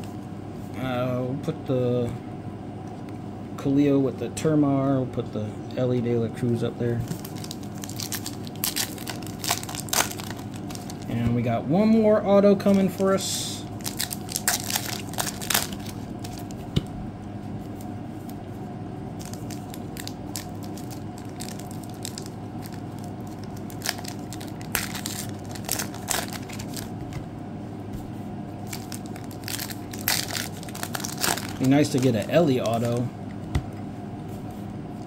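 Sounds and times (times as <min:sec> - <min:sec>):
foil wrapper crinkling and tearing: 0:07.1 - 0:11.1, 0:13.8 - 0:16.6, 0:19.2 - 0:26.9, 0:28.6 - 0:33.1.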